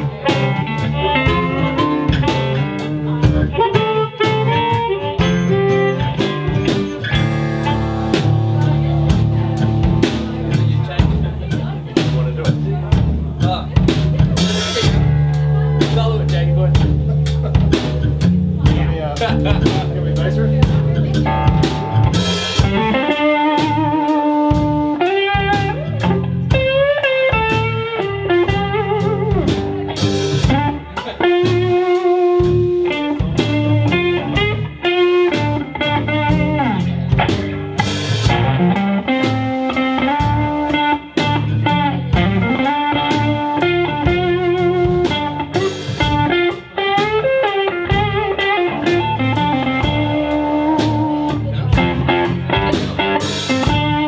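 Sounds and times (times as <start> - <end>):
drum kit beat: 0.0 - 54.0
guitars: 0.0 - 54.0
lead guitar bent notes: 0.0 - 54.0.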